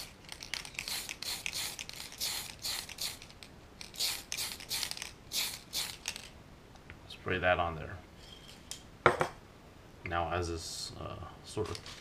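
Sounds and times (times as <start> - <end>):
aerosol can ball rattling: 0.0 - 6.4.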